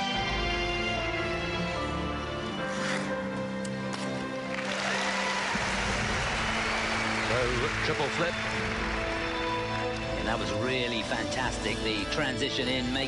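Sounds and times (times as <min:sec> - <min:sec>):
orchestral music over speakers: 0:00.0 - 0:13.0
crowd applause: 0:04.5 - 0:10.9.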